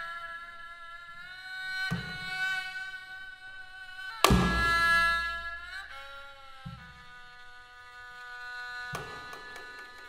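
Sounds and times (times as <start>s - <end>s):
bowed fiddle note: 0.0s - 10.0s
light percussive stroke: 4.2s - 5.7s, 8.9s - 10.0s.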